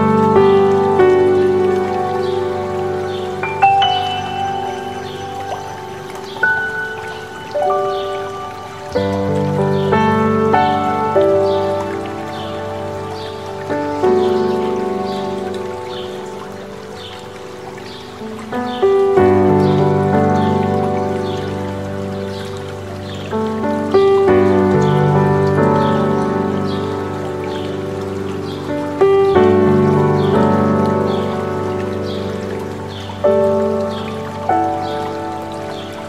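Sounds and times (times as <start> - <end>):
gentle solo piano chords: 0.0 - 36.0
mountain stream rushing: 0.0 - 36.0.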